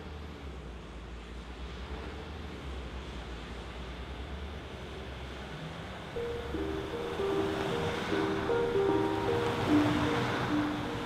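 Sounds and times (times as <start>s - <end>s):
slow music with held notes: 6.2s - 11.0s
steady hissing wash: 6.2s - 11.0s.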